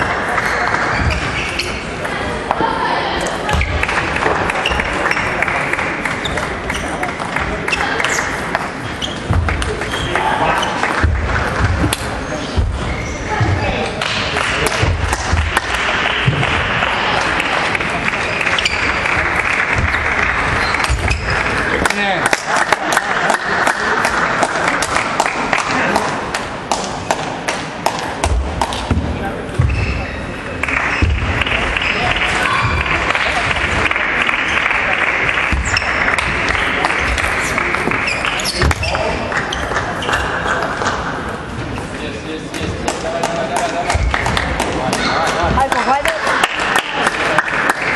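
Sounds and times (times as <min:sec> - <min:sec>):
babble of many voices: 0:00.0 - 0:47.9
low thuds: 0:11.0 - 0:16.9.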